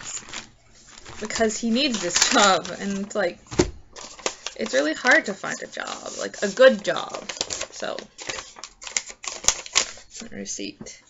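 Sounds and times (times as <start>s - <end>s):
paper receipt crinkling: 0.0s - 3.3s, 4.0s - 10.2s.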